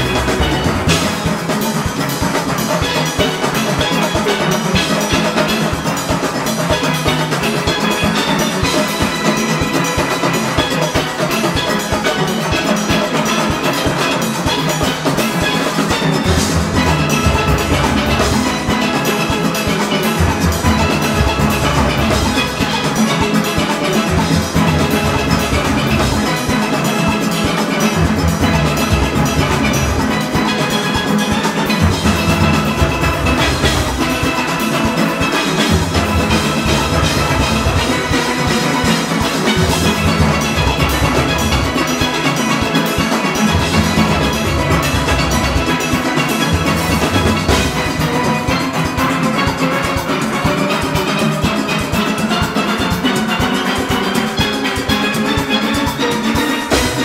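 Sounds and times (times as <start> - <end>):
drum kit congas and cymbals: 0.0 - 57.0
steelpans playing: 0.0 - 57.0.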